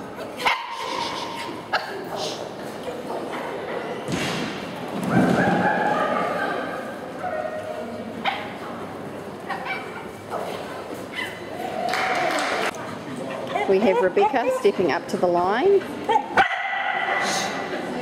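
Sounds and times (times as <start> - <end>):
dog barking: 16.4 - 17.2.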